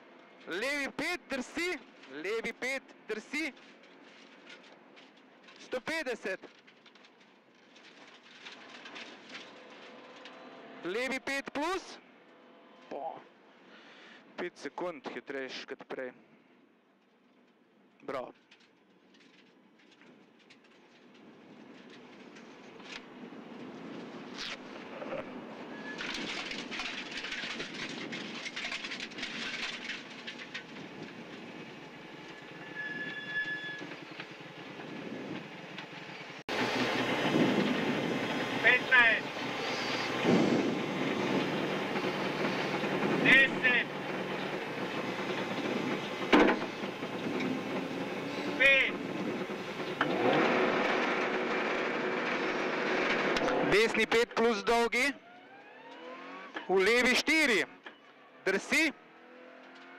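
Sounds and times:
mechanical rattle and clatter: 3.5s - 11.8s, 25.8s - 32.8s, 33.8s - 54.2s
high wavering squeaks: 32.3s - 34.3s, 39.3s - 43.1s
rally car engine running: 33.8s - 54.3s.

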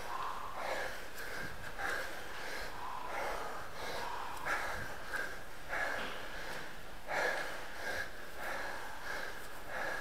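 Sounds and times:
heavy rapid panting: 0.0s - 10.0s.

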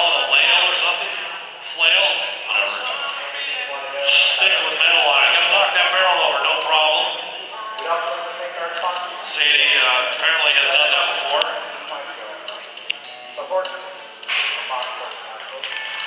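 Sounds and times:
man talking with echo: 0.0s - 12.5s, 13.3s - 16.0s.

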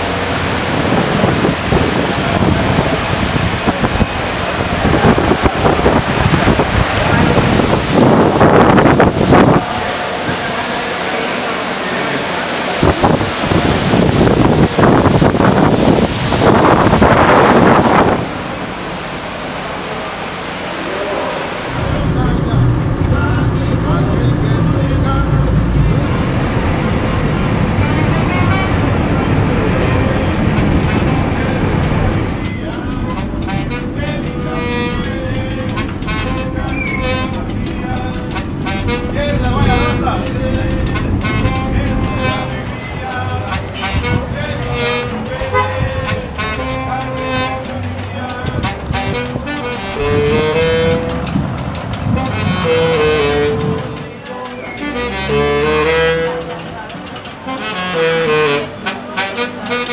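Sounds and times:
car driving rumble: 0.0s - 54.8s
heavy rain pouring: 0.0s - 59.9s
music with voices: 19.7s - 59.9s.

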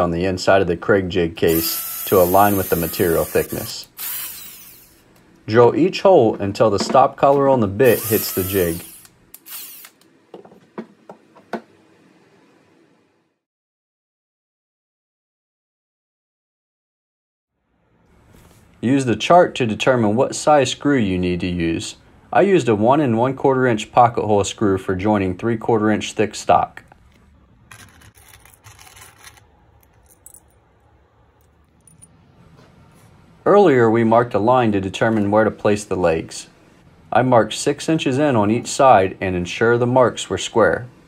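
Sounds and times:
screws clinking in plastic compartment: 27.7s - 30.4s.

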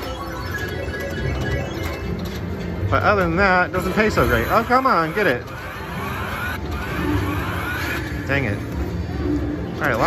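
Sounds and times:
slot machine rising tone: 0.0s - 8.5s
casino hum: 0.0s - 9.7s.

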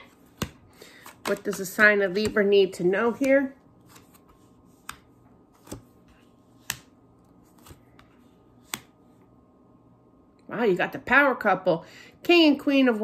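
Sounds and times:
cards snapping down: 3.9s - 5.9s, 6.6s - 9.0s.

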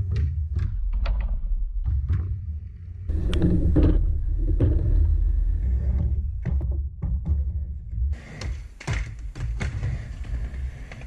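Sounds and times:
skateboard wheels rolling on wood: 7.6s - 11.0s.

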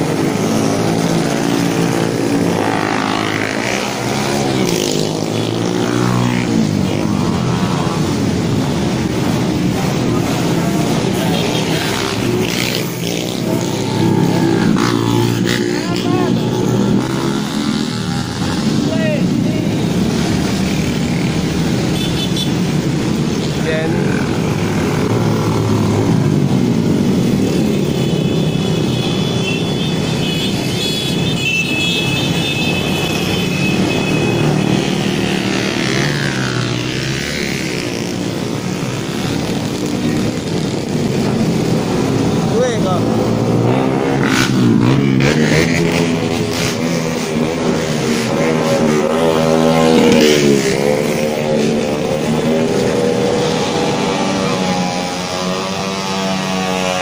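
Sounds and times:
motorcycle engines revving: 0.0s - 57.0s.

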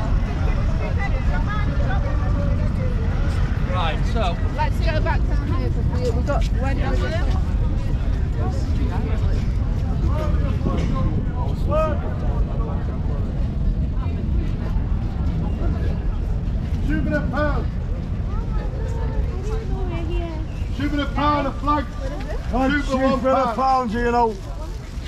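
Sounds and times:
passers-by talking: 0.0s - 25.0s
steady low rumble: 0.0s - 25.0s.

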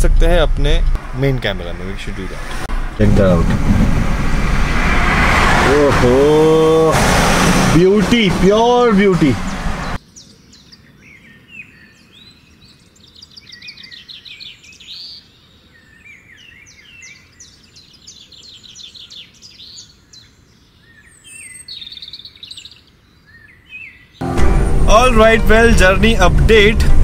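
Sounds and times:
road and engine noise in car: 0.0s - 10.0s, 25.0s - 27.0s
wild birds singing and calling: 8.6s - 24.2s.

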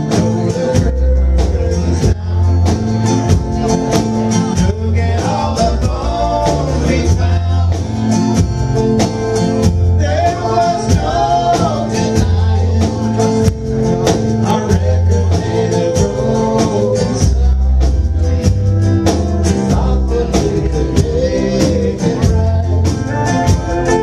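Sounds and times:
man singing: 0.0s - 8.4s, 9.8s - 24.0s
country-rock band playing: 0.0s - 24.0s.

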